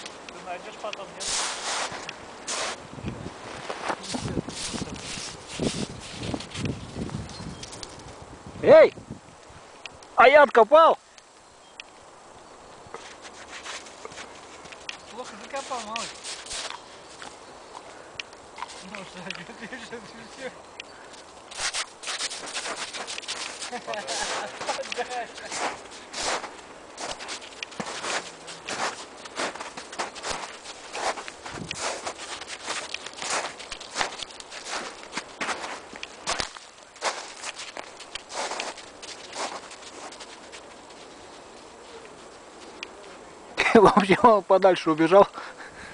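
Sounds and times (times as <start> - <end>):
footsteps crunching in snow: 0.0 - 8.2, 12.8 - 17.5, 18.6 - 20.5, 21.2 - 43.2.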